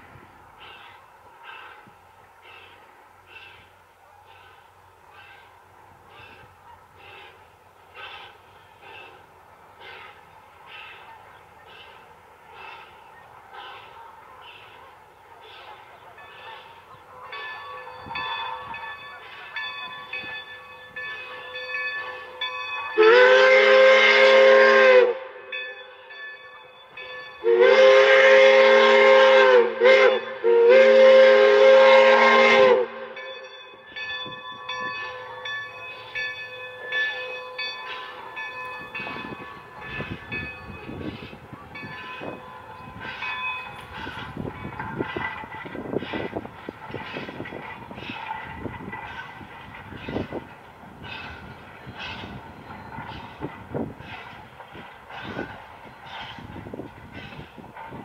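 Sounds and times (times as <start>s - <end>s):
train running noise: 0.0s - 58.0s
train whistle: 23.0s - 25.5s, 27.4s - 33.3s.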